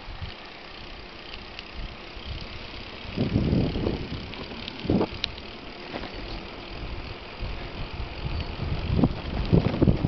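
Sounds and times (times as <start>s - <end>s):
wind and road rumble: 0.0s - 10.0s.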